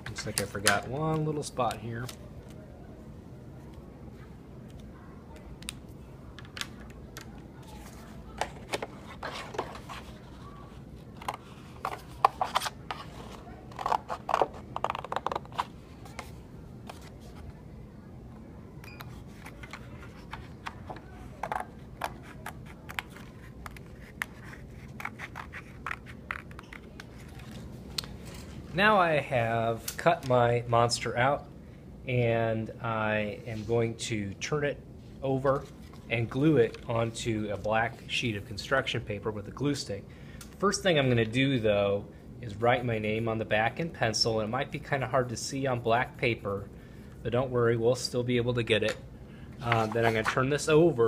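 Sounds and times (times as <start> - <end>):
steady low hum: 0.0 - 51.0.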